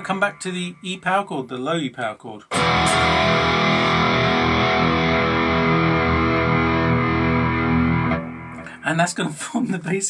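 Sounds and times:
distorted electric guitar chord: 0:02.5 - 0:08.8.

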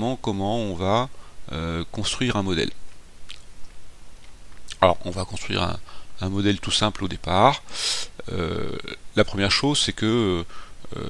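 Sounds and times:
man speaking: 0:00.0 - 0:02.8, 0:04.7 - 0:11.0.

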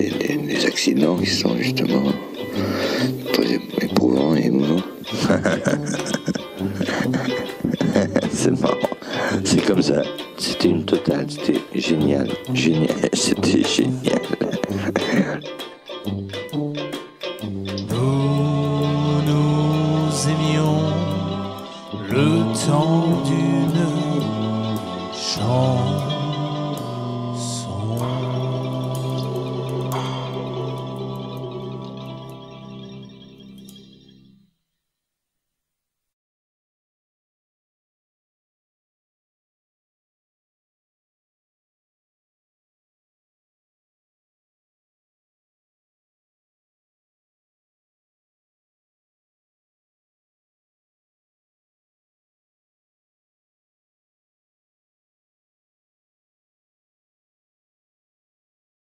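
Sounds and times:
banjo: 0:00.0 - 0:33.4
sousaphone bass notes: 0:00.0 - 0:34.3
brass band held chord: 0:17.4 - 0:32.6.

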